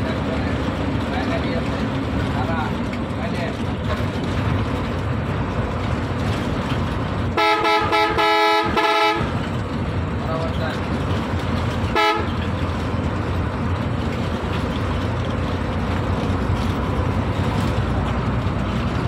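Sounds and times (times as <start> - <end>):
bus engine and road rumble: 0.0 - 19.0
multi-tone horn toots: 7.4 - 9.4, 11.9 - 12.4.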